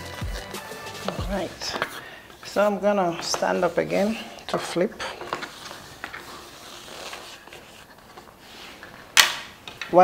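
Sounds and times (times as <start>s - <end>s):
handling cake boards: 1.0s - 10.0s.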